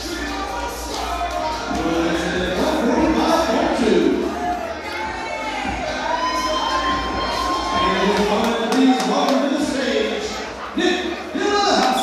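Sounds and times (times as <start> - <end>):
crowd cheering and shouting: 0.0 - 12.0.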